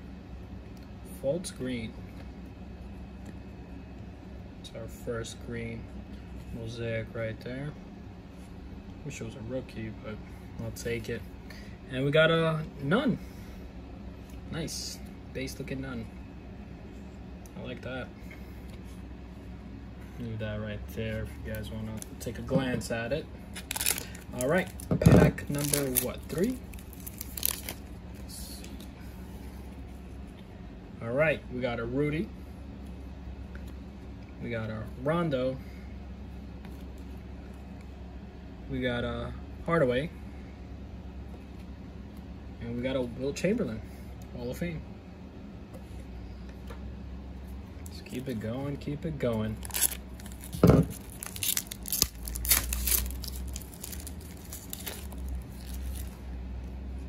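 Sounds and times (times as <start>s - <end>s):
low steady hum: 0.0s - 57.0s
card pack wrapper tearing: 23.6s - 27.9s, 49.5s - 56.2s.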